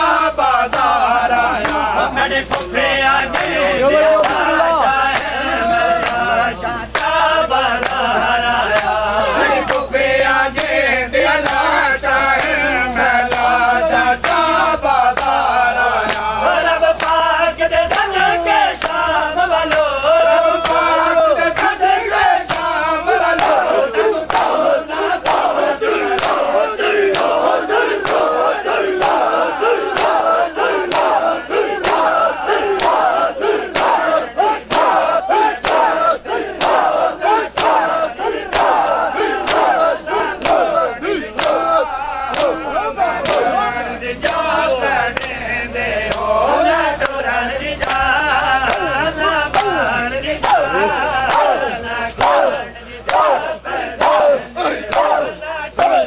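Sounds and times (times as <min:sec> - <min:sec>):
men chanting: 0:00.0 - 0:56.0.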